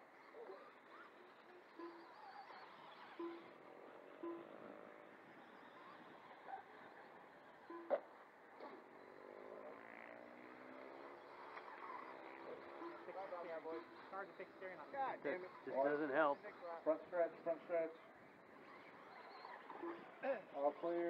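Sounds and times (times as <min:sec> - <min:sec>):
electric motors whining: 0:00.0 - 0:21.0
short beeps: 0:03.2 - 0:03.5, 0:04.2 - 0:04.5.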